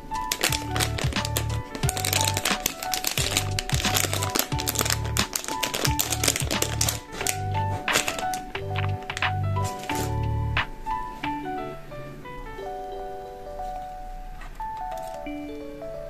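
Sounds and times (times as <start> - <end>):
plastic packaging crinkling: 0.0 - 10.2, 14.5 - 15.4
background music with steady beat: 0.0 - 15.9.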